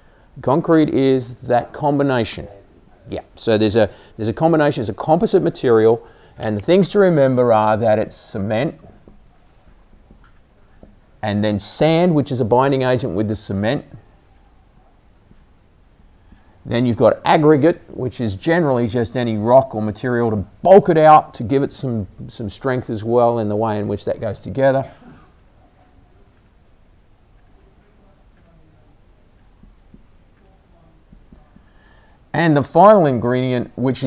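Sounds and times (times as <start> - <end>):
marker scratching on whiteboard: 7.8 - 11.0, 13.8 - 16.6, 25.2 - 26.4, 28.9 - 31.8.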